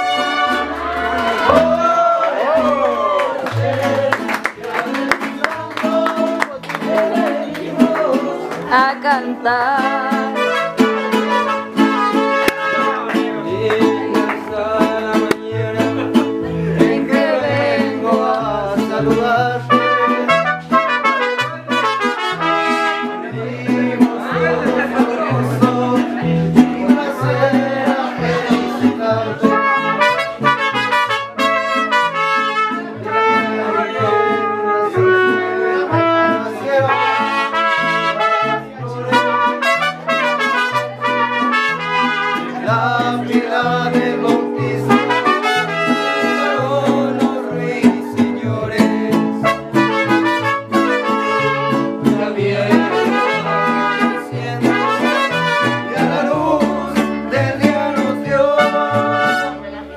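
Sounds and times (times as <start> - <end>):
trumpets playing melody: 0.0 - 1.7, 10.2 - 13.1, 19.7 - 23.3, 29.4 - 42.6, 44.9 - 46.6, 49.4 - 52.0, 52.8 - 56.3, 58.5 - 59.8
bass line: 0.0 - 4.7, 7.8 - 40.3, 42.7 - 59.9
mariachi band playing: 0.0 - 59.9.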